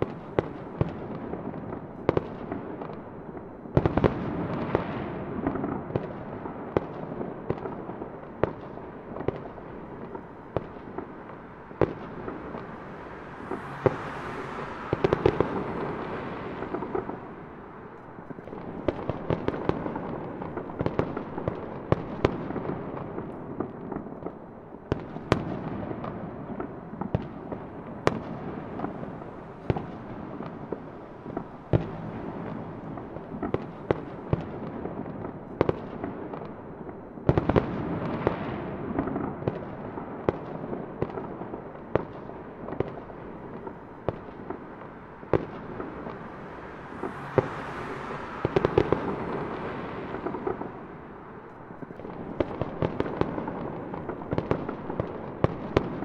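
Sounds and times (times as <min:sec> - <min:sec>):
sharp firework bangs: 0:03.8 - 0:24.3, 0:37.3 - 0:56.0
fireworks bursting: 0:03.8 - 0:56.0.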